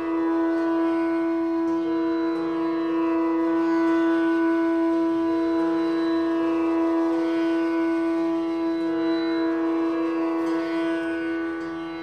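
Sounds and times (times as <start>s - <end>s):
bamboo flute long notes: 0.0s - 12.0s.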